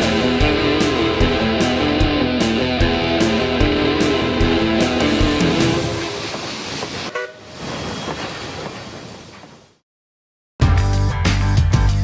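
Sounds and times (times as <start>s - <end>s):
rushing wash of noise: 0.0s - 9.8s
short horn toot: 7.1s - 7.5s.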